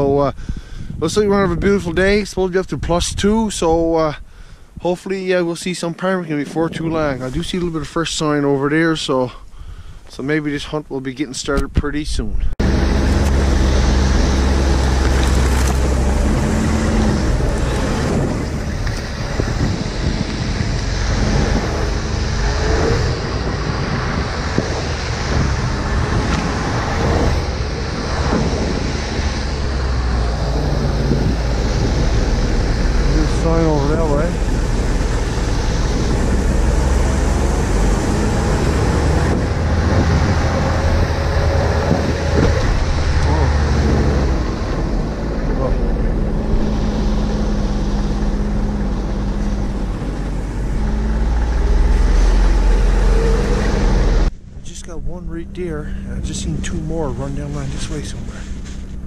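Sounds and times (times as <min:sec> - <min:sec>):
snowmobile engine running: 0:12.6 - 0:59.0.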